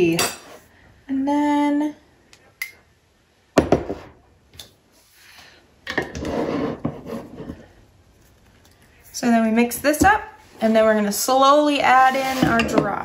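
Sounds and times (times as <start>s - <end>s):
rough scraping: 11.8s - 12.7s.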